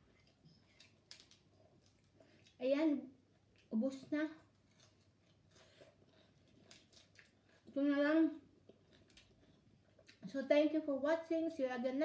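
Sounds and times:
lettuce leaves crackling: 6.6 - 7.4.

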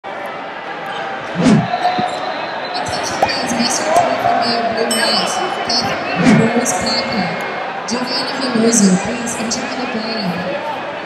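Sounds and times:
crowd noise and chatter: 0.0 - 11.0.

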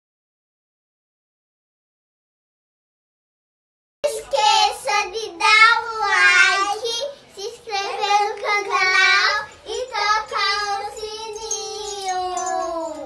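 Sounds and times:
girls singing together: 4.0 - 13.0.

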